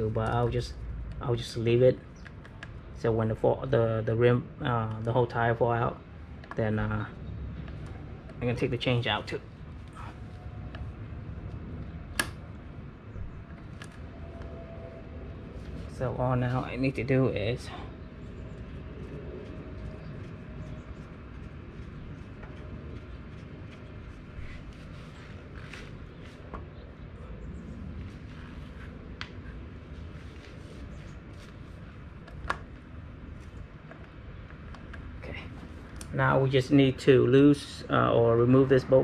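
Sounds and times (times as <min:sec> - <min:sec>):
low hum: 0:00.0 - 0:39.0.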